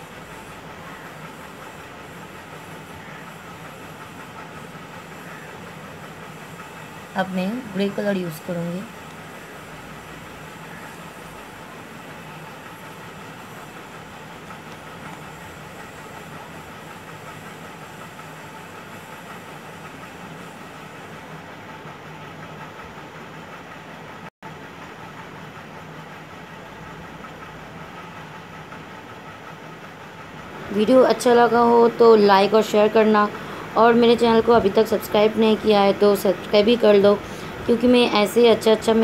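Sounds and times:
mechanical hum: 0.0s - 39.0s.

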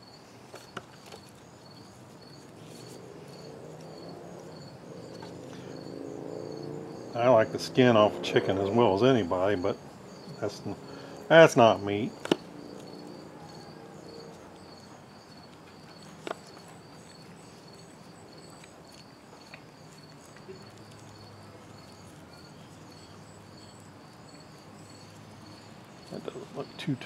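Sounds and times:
insects chirping: 0.0s - 27.0s.

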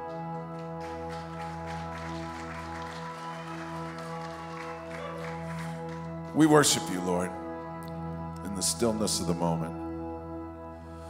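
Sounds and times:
soft sustained synth pad chord: 0.0s - 11.0s.

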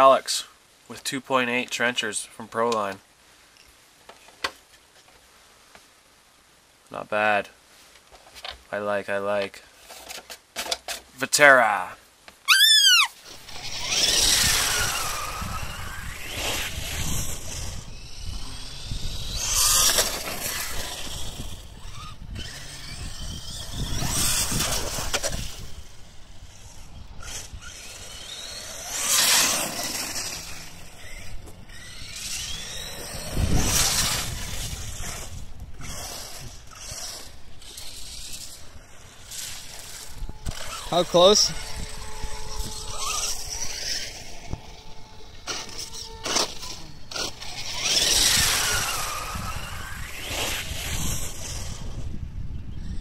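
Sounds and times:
toy truck motor whine: 12.5s - 53.0s.

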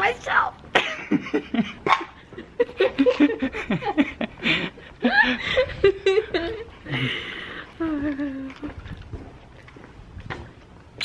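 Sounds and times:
people laughing: 0.8s - 8.5s.

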